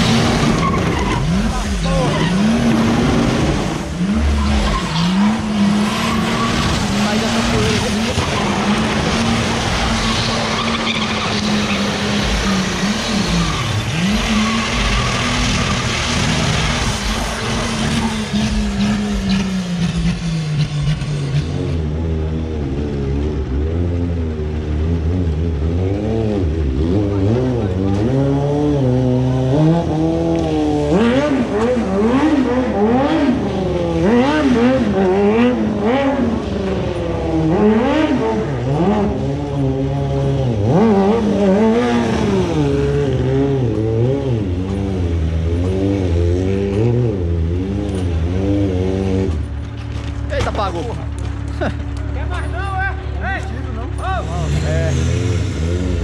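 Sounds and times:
tyres squealing: 0.0s - 3.3s, 4.0s - 19.4s
car engine at high revs: 0.0s - 56.0s
motorcycle engine revving: 0.0s - 56.0s.

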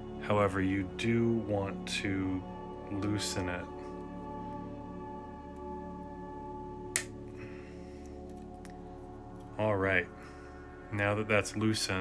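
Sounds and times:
soft bell-like background music: 0.0s - 12.0s.

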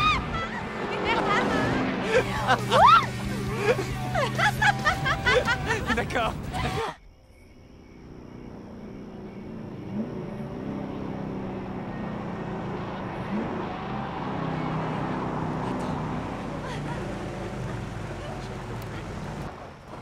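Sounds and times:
car engine running: 0.0s - 6.6s, 8.0s - 20.0s.

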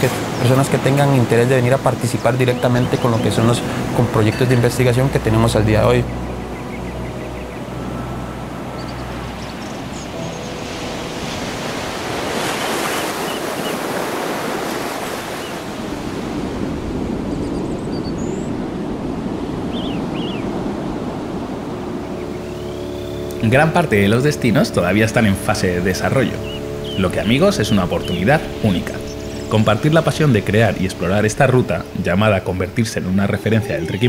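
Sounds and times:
ocean waves breaking: 0.0s - 34.0s.

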